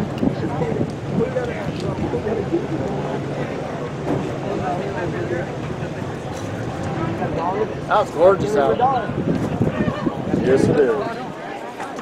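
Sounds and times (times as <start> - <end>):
race car engines humming: 0.0 - 11.0
indistinct chatter: 0.0 - 12.0.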